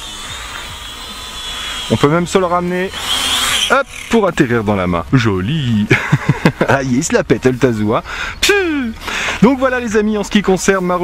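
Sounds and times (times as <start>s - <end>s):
drone propellers whining: 0.0s - 5.1s.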